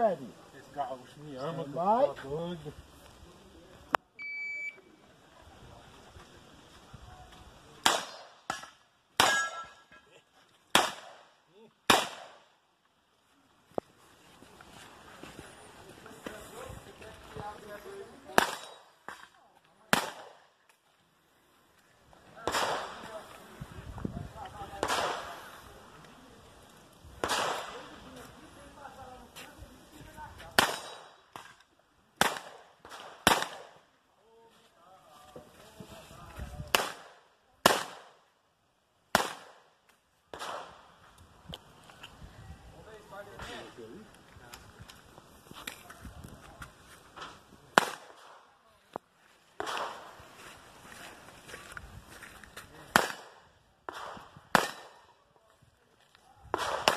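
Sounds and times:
pistol shots: 7.8 - 9.7, 10.7 - 11.3, 11.9 - 12.4, 18.3 - 18.8, 19.9 - 20.4, 22.4 - 23.0, 27.2 - 27.8, 30.5 - 31.5, 32.2 - 33.8, 36.7 - 38.2, 39.1 - 39.6, 40.3 - 40.8, 47.8 - 48.4, 49.6 - 50.1, 52.9 - 55.1, 56.6 - 56.9.

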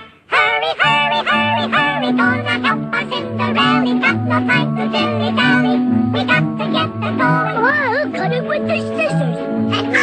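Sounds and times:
light orchestral accompaniment: 0.0 - 10.0
high sped-up voices singing: 0.2 - 10.0.

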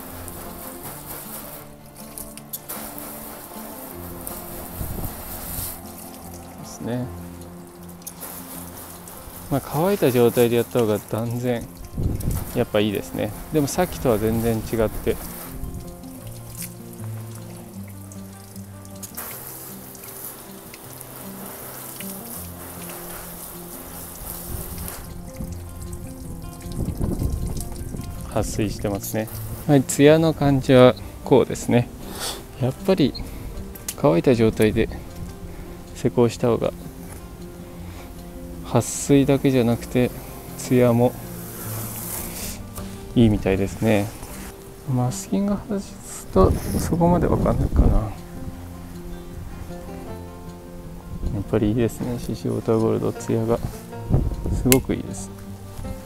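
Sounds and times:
background music of held notes: 0.0 - 56.0
hose water spraying on car: 0.0 - 56.0.

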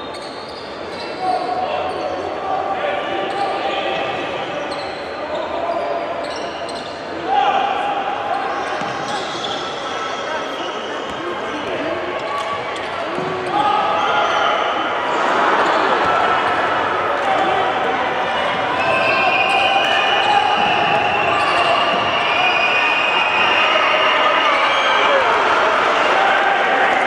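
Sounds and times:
crowd voices and shouts: 0.0 - 27.0.

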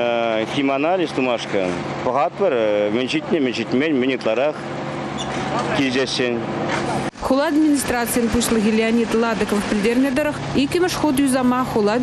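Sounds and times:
road-paving machinery humming: 0.0 - 12.0.

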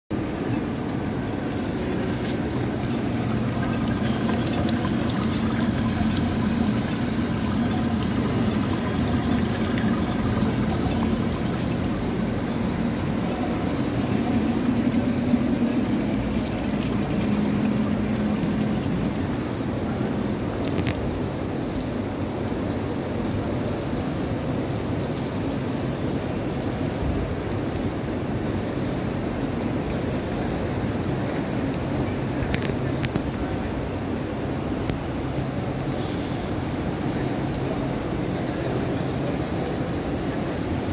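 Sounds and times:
background traffic hum: 0.1 - 40.9
fountain splashing into pool: 0.1 - 40.9.

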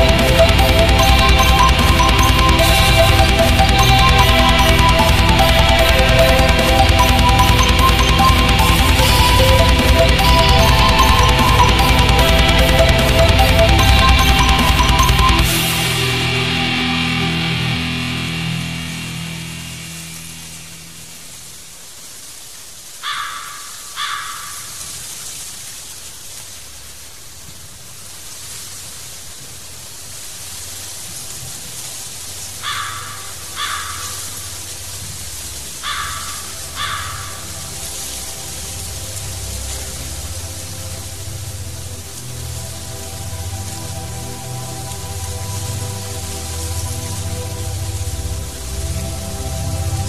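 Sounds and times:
heavy metal music: 0.0 - 21.6, 35.9 - 50.0
low drone: 0.0 - 21.8, 36.4 - 50.0
rain hiss: 0.0 - 50.0
crow cawing: 23.0 - 24.8, 32.6 - 34.3, 35.8 - 37.5.

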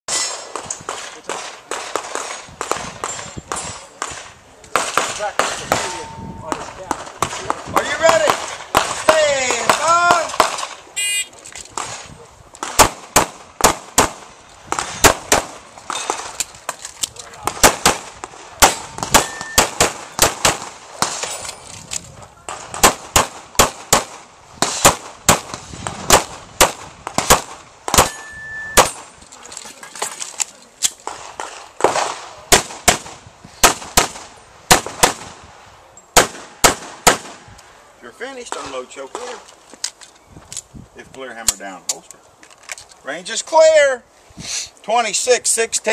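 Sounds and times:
shot timer beep: 11.0 - 11.3
pistol shots: 12.6 - 15.6, 17.4 - 21.3, 22.5 - 29.1, 31.0 - 35.4, 36.2 - 37.5.

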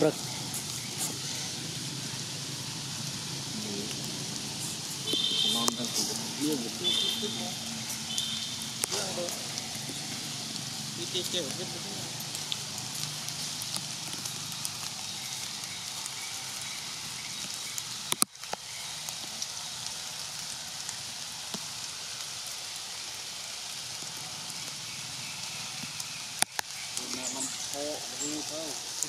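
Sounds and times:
outdoor background hiss: 0.0 - 29.0.

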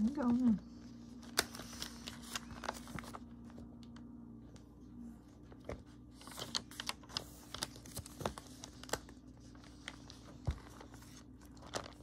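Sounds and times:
magazine pages crinkling: 0.2 - 4.1, 5.5 - 12.0.

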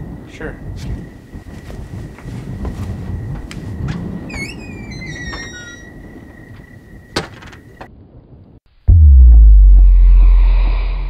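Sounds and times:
squeaky chirping: 4.3 - 6.2
door thuds: 7.1 - 7.9.

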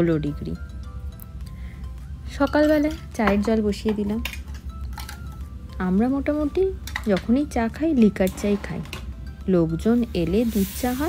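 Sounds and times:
metal kitchenware clinking: 2.4 - 5.4, 6.8 - 9.2.

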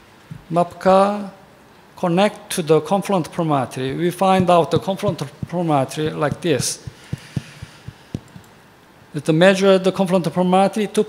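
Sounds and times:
faint room hiss: 0.0 - 11.0
soft low thumps: 4.3 - 8.5.

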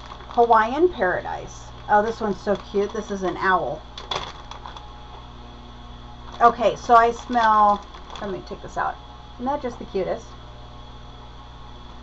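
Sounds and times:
plastic bag crinkling: 0.0 - 5.3, 6.2 - 9.0
low steady hum: 0.0 - 12.0.

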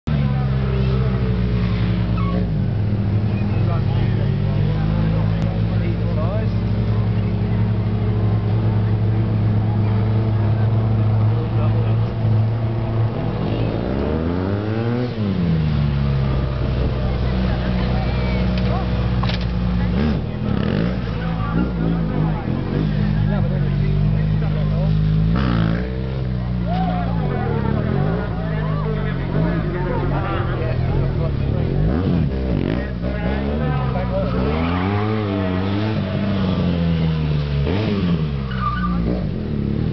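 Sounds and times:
motorcycle engine revving: 0.0 - 39.9.

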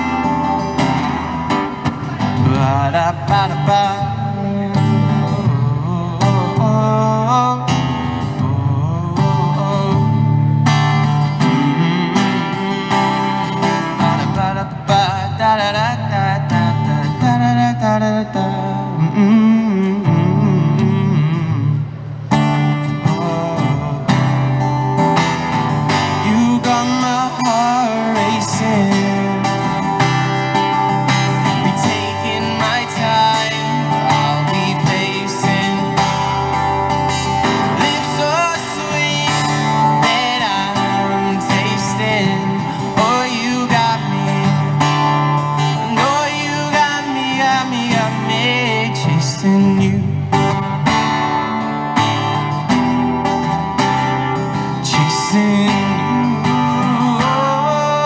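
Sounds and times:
acoustic guitar strummed: 0.0 - 58.0
man singing wordless melody: 2.2 - 22.0, 22.9 - 24.6, 26.0 - 30.0, 31.3 - 50.6, 54.6 - 58.0.

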